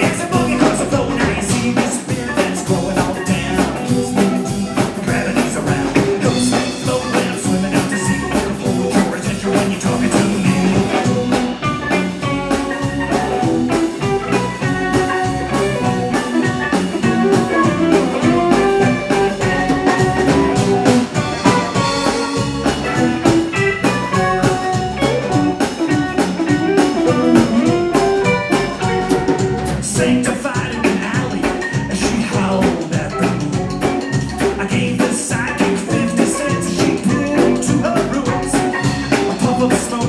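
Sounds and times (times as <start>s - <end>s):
bass guitar: 0.0s - 40.0s
drum kit: 0.0s - 40.0s
electric guitars: 0.0s - 40.0s.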